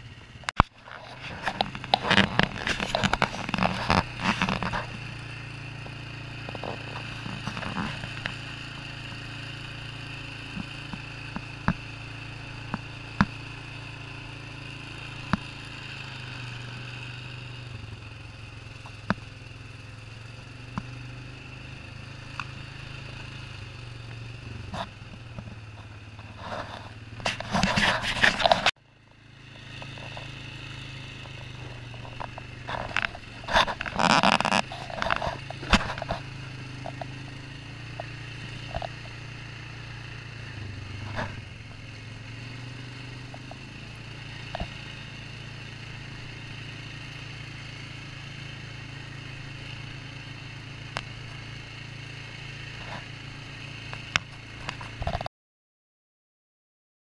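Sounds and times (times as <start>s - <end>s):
atv engine running: 0.0s - 55.3s
knocks over rough ground: 0.4s - 5.1s, 31.2s - 37.2s
loud clattering and scraping: 0.4s - 5.1s, 6.4s - 8.4s, 24.6s - 28.8s, 31.2s - 37.1s.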